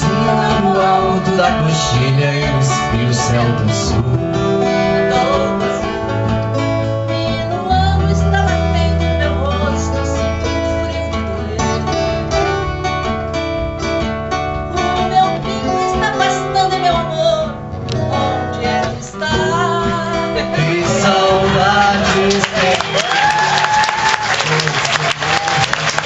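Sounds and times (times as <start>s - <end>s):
woman singing: 0.0s - 11.9s, 14.7s - 23.4s
acoustic guitars playing: 0.0s - 26.0s.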